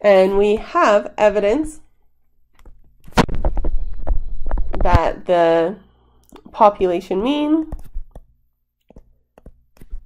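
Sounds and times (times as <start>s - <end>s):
stylus tapping on tablet screen: 7.6s - 10.0s.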